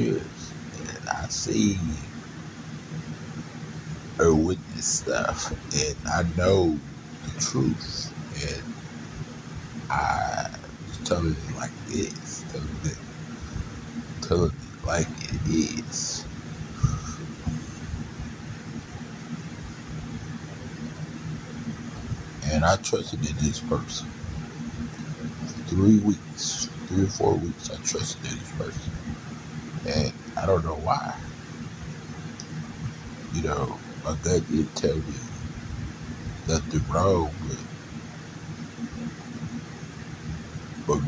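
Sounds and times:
room noise hum and hiss: 0:00.0 - 0:41.0.

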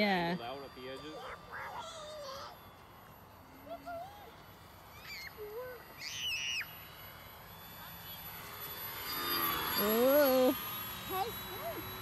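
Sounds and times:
high-pitched pitch-bending calls: 0:00.0 - 0:12.0.

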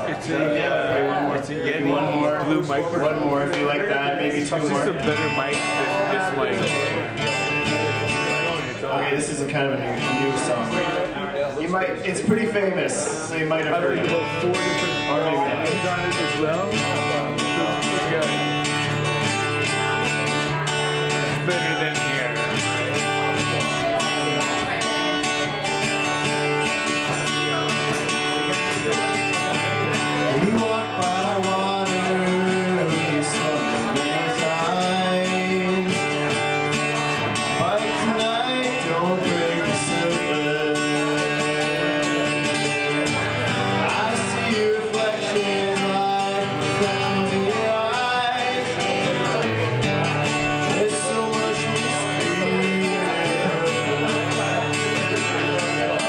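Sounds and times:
man singing: 0:00.0 - 0:11.0, 0:12.0 - 0:56.0
acoustic guitar strumming: 0:00.0 - 0:56.0.

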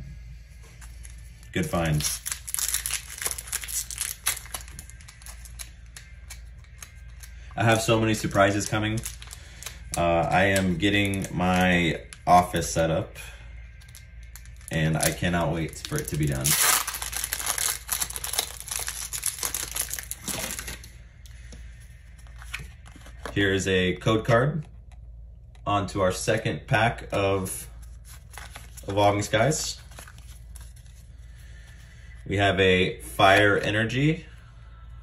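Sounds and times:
foil wrapper crinkling: 0:01.0 - 0:11.8, 0:13.8 - 0:20.9, 0:28.0 - 0:31.1.

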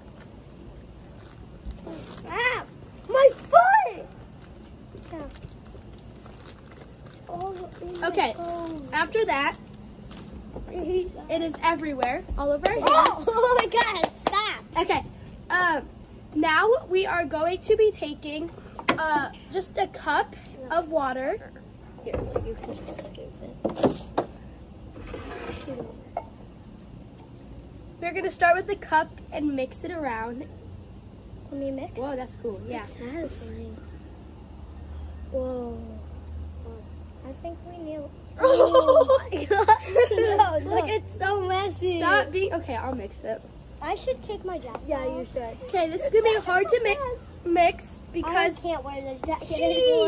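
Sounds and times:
low steady hum: 0:00.0 - 0:50.0
girls' high-pitched cries: 0:49.4 - 0:50.0.

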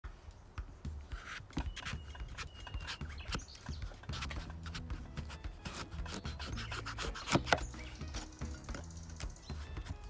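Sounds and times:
knife crunching through squash: 0:01.1 - 0:10.0.

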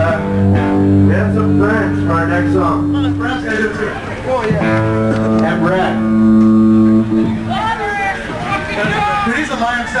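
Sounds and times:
electric guitar ringing: 0:00.0 - 0:08.1
voices talking: 0:01.1 - 0:10.0.

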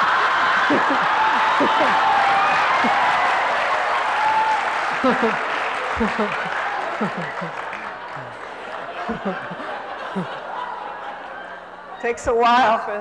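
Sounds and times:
woman laughing: 0:00.0 - 0:03.0, 0:05.0 - 0:08.4, 0:09.0 - 0:10.9
audience clapping: 0:00.0 - 0:11.4.

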